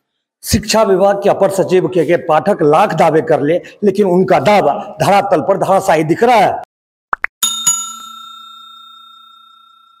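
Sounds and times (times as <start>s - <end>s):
notification bell chime: 7.4s - 10.0s.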